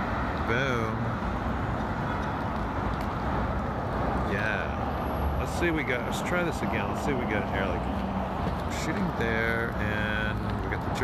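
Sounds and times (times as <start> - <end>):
city street traffic: 0.0 - 11.0.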